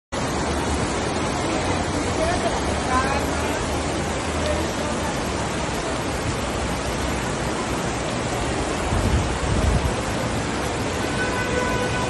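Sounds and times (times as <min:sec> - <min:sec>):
water rushing across tiled floor: 0:00.1 - 0:12.0.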